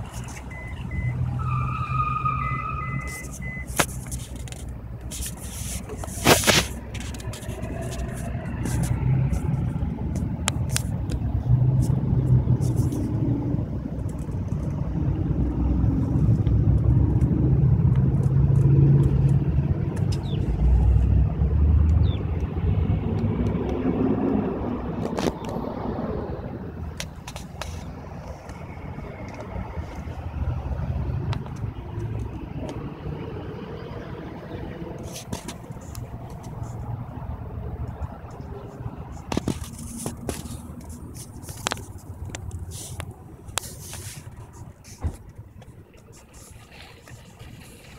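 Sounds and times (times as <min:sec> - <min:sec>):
car rumble from inside: 0:00.0 - 0:47.9.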